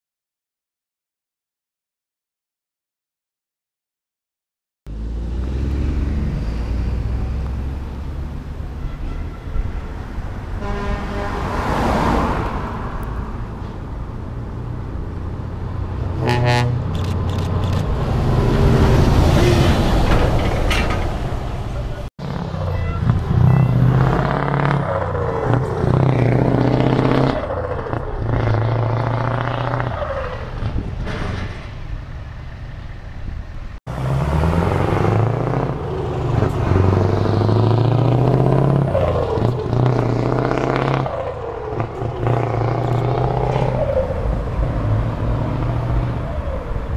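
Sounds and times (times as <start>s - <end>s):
lorry passing by: 4.9s - 8.8s, 10.0s - 32.9s, 33.8s - 46.9s.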